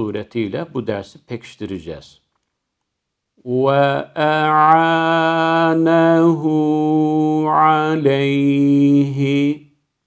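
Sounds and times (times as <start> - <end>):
man chanting: 0.0 - 2.2, 3.4 - 9.7.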